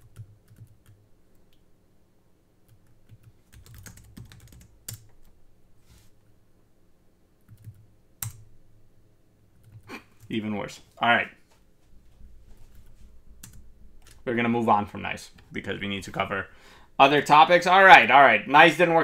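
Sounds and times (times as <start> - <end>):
computer keyboard typing: 0.0 - 1.0, 2.7 - 5.4, 7.4 - 8.5, 9.6 - 9.9, 12.7 - 14.2.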